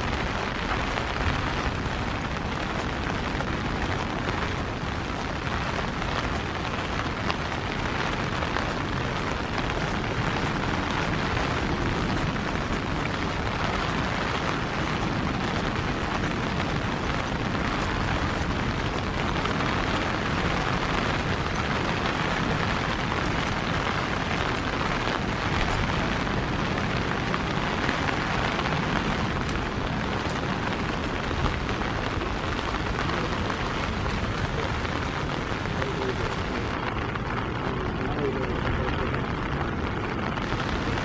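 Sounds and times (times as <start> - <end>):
constant low rumble: 0.0 - 41.0
rain on stone paving and foliage: 0.0 - 41.0.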